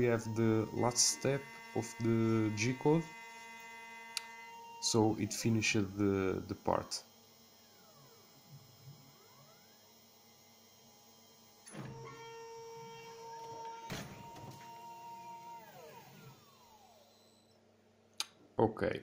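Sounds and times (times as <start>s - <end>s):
mill motors whining: 0.0s - 17.6s.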